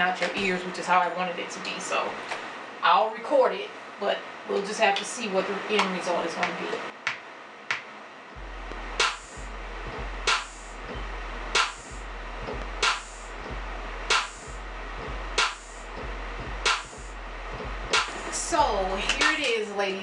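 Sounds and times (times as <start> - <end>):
clap-like drum machine hits: 7.0 - 18.4
deep bass line: 8.4 - 19.4.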